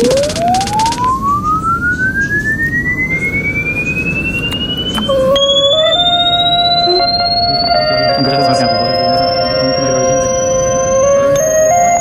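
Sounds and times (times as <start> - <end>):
pulsing low rumble: 0.0 - 11.4
held electronic notes: 0.0 - 12.0
synthesizer tone gliding upward: 0.0 - 12.0.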